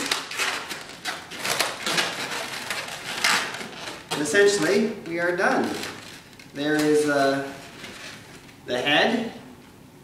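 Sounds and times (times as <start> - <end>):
balloons rubbing scrunches: 0.0 - 8.6.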